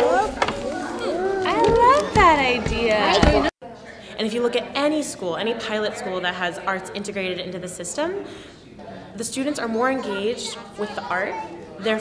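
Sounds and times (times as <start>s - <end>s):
young children talking: 0.0s - 3.5s, 9.4s - 12.0s.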